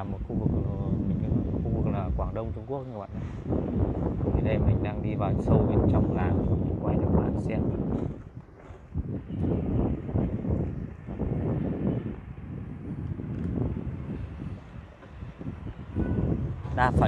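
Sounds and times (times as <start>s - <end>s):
low road noise: 0.0s - 17.0s
wind rumbling on microphone: 0.0s - 17.0s.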